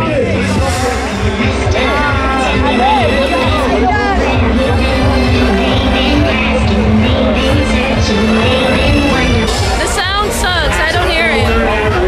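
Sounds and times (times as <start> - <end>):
loud live music with booming bass: 0.0 - 12.0.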